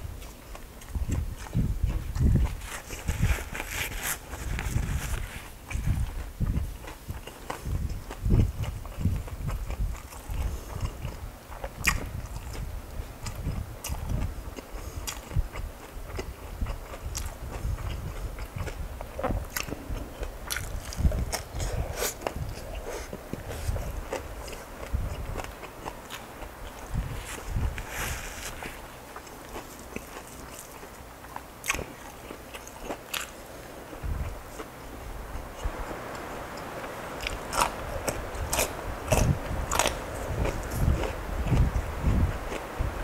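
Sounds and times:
person chewing crunchy food: 0.2s - 34.7s, 35.6s - 42.8s.

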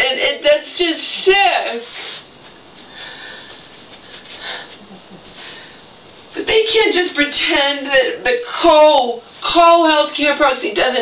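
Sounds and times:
faint room noise: 0.0s - 11.0s.

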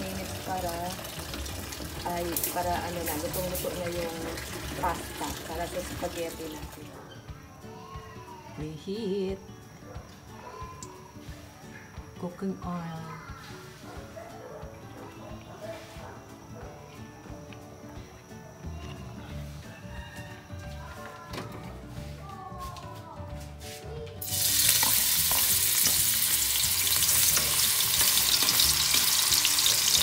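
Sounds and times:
garlic sizzling in hot oil: 0.0s - 6.8s, 24.2s - 30.0s
spatula stirring in wok: 24.2s - 30.0s.

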